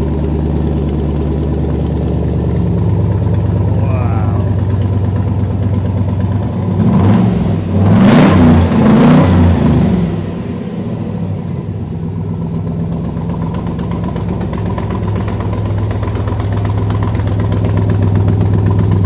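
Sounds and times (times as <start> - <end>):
car engine idling and revving: 0.0 - 19.0.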